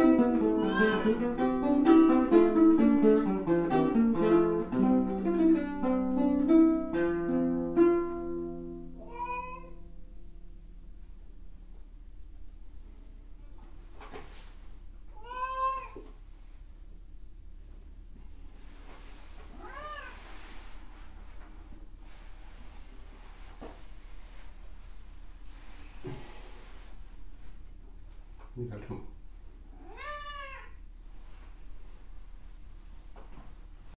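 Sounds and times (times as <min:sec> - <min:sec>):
cat meowing: 0:00.4 - 0:01.3, 0:09.0 - 0:09.8, 0:15.1 - 0:16.0, 0:19.6 - 0:20.2, 0:29.7 - 0:30.8
soft rustle: 0:12.6 - 0:15.0, 0:15.7 - 0:17.0, 0:17.6 - 0:28.6, 0:30.9 - 0:33.9.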